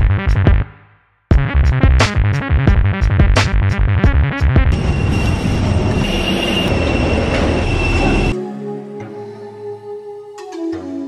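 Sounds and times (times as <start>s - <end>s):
high-pitched squeal: 4.7s - 8.4s
vehicle ride rumble: 4.7s - 8.4s
soft music: 8.0s - 11.0s.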